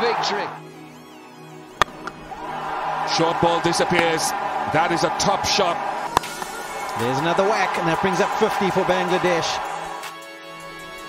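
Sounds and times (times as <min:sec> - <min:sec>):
soft background music: 0:00.0 - 0:11.0
cricket bat hitting ball: 0:01.8 - 0:02.2, 0:06.1 - 0:06.6
crowd noise: 0:01.9 - 0:10.1.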